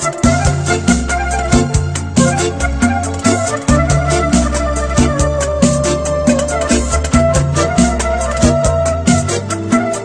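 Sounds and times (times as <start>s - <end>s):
bass notes: 0.0s - 10.0s
percussion beat: 0.0s - 10.0s.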